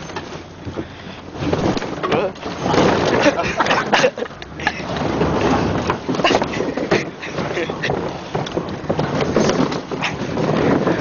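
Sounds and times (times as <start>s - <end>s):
truck bed rattling: 0.0s - 11.0s
truck driving on dirt road: 0.0s - 11.0s
wind buffeting microphone: 0.0s - 11.0s.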